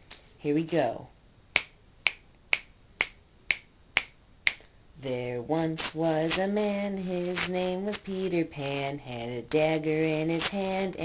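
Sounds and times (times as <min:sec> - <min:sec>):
fingers snapping: 0:01.6 - 0:04.7.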